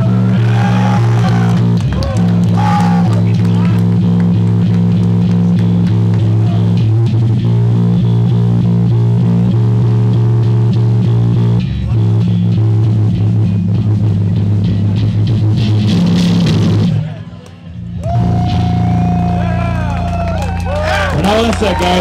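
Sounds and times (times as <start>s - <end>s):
distorted electric guitar chords: 0.0s - 22.0s.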